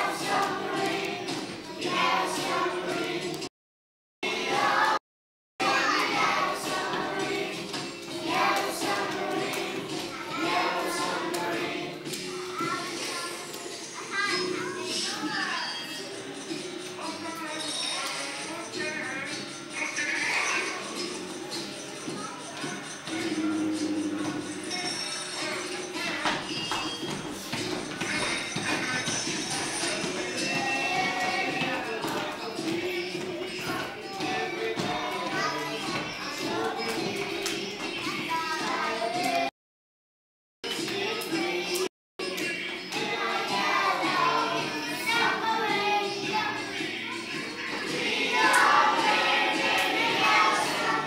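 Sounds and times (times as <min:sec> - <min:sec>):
children singing together: 0:00.0 - 0:03.5, 0:04.3 - 0:05.0, 0:05.6 - 0:13.8, 0:27.9 - 0:39.5, 0:40.7 - 0:51.0.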